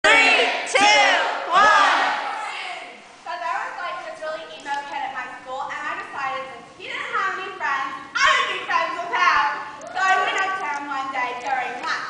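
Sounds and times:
high voices shouting in unison: 0.0 - 2.9.

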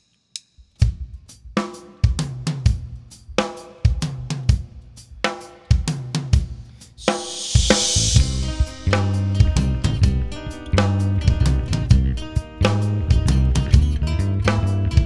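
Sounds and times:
cymbal wash: 7.0 - 11.6
live rock band playing: 7.0 - 15.0.

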